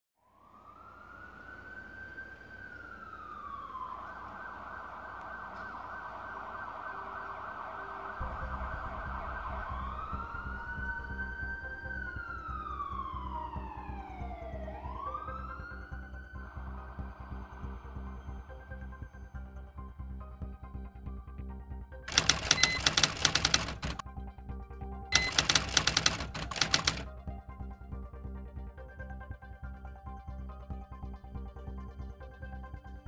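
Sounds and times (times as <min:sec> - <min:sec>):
emergency siren wailing: 0:00.2 - 0:17.0.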